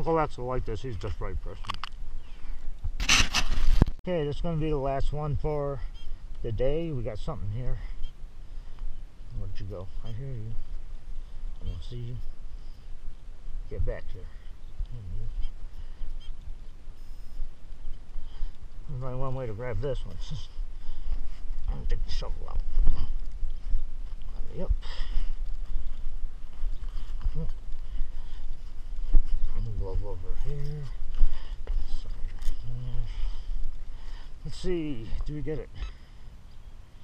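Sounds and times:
constant low rumble: 0.0s - 37.0s
faint metal detector beeps: 9.9s - 10.6s, 15.2s - 17.4s, 35.8s - 36.0s
person humming: 32.6s - 33.1s.

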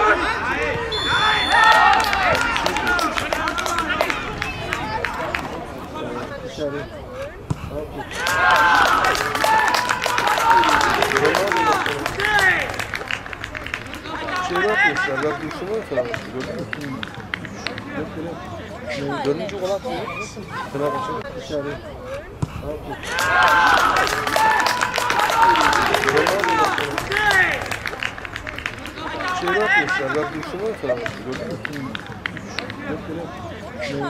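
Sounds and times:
people shouting and cheering: 0.0s - 21.3s, 22.1s - 34.0s
scattered clapping: 1.3s - 6.0s, 8.1s - 18.4s, 23.0s - 33.4s.

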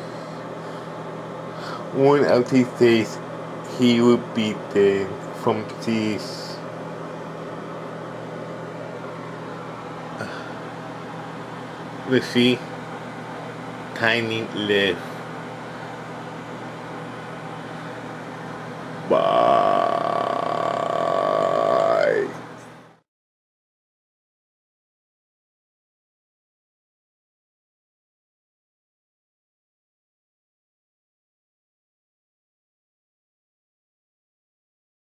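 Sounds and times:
low hum: 15.4s - 23.0s
person's drawn-out vocal groan: 19.1s - 22.3s.

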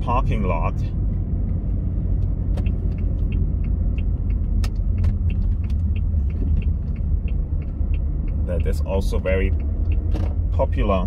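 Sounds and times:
car road and engine rumble: 0.0s - 11.0s
turn signal ticking: 0.0s - 11.0s.

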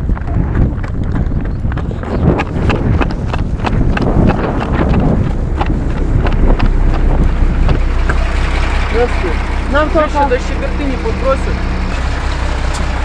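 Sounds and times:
running footsteps: 0.0s - 8.4s
truck engine running low: 0.0s - 13.0s
wind buffeting microphone: 0.0s - 13.0s.

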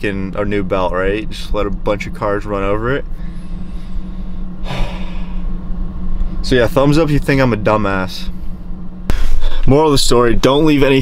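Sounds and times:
low hum inside car: 0.0s - 11.0s
man exhaling through nose: 3.2s - 5.5s.

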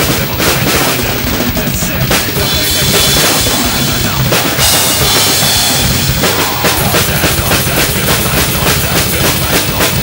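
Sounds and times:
fast bass drum strokes: 0.0s - 10.0s.

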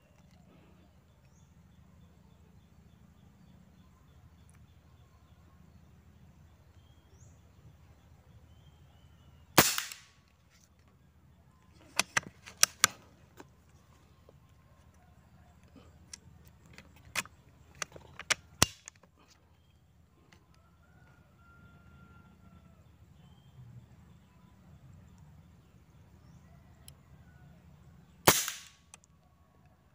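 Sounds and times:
air rifle shot: 9.6s - 10.1s, 28.2s - 28.8s.

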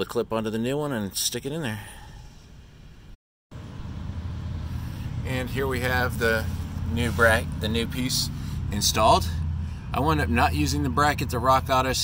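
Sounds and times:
low vehicle rumble: 2.5s - 12.0s.

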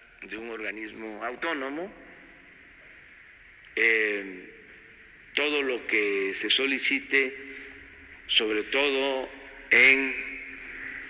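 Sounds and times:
faint background hiss: 0.0s - 11.0s
man speaking: 0.2s - 2.2s, 3.8s - 4.6s, 5.3s - 7.5s, 8.3s - 10.6s.

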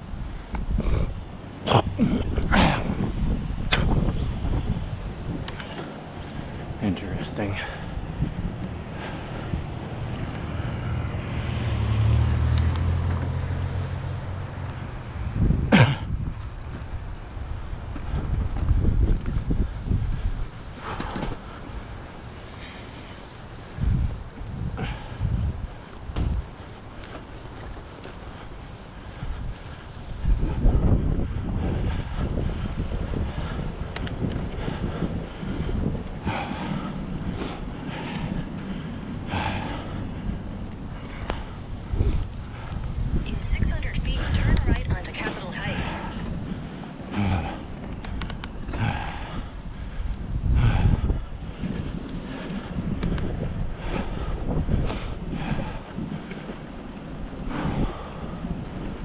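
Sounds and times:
tyres rumbling on road: 0.0s - 59.0s
wind buffeting microphone: 0.0s - 59.0s
bike knocking over bumps: 26.0s - 28.3s.

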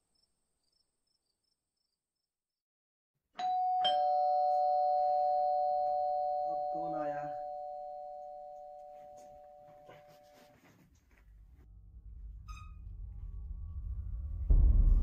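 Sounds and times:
two-tone doorbell chime: 3.4s - 10.5s.

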